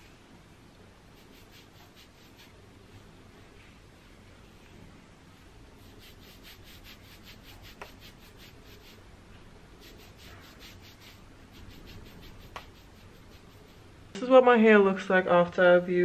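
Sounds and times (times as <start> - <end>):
fingers rubbing shampoo into hair: 1.1 - 2.7, 5.8 - 9.0, 9.8 - 13.9.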